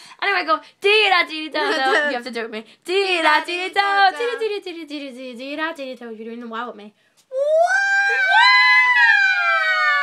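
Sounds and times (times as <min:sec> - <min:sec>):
girls screaming high note: 0:07.4 - 0:10.0.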